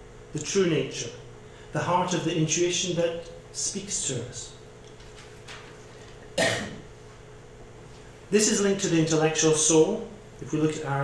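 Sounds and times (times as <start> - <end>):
man coughing: 6.4 - 6.9.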